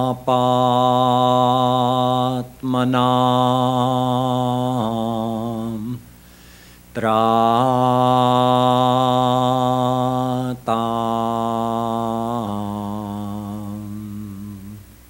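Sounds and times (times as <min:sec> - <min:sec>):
man chanting: 0:00.0 - 0:06.0, 0:06.9 - 0:14.8.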